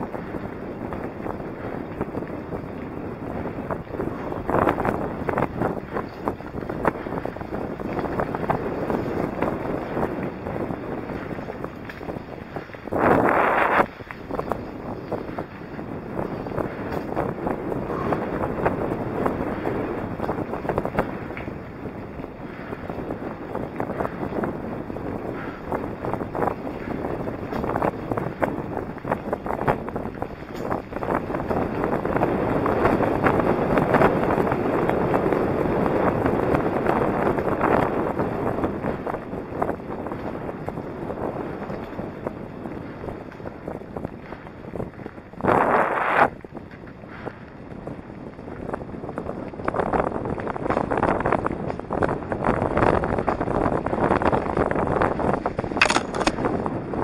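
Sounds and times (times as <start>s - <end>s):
tyre rumble: 0.0s - 57.0s
wind buffeting microphone: 0.0s - 57.0s.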